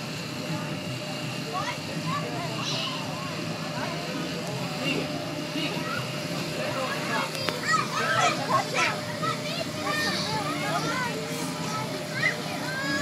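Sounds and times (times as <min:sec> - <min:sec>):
air blower hum: 0:00.0 - 0:13.0
children shouting and squealing: 0:07.0 - 0:13.0.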